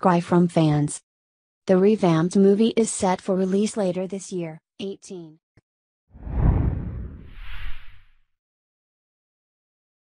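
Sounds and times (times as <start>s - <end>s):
low rumbling whoosh: 6.2s - 8.2s.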